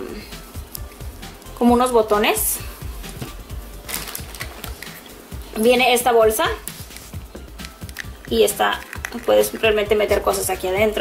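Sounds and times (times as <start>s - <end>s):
upbeat background music: 0.0s - 11.0s.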